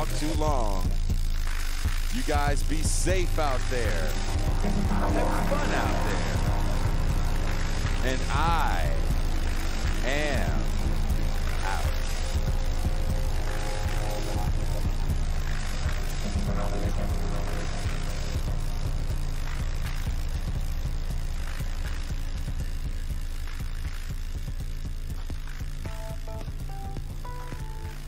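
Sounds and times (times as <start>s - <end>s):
music with heavy bass line: 0.0s - 28.0s.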